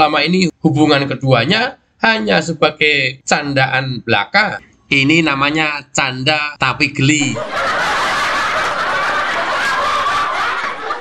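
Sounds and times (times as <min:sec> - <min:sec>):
people laughing: 0:07.1 - 0:11.0.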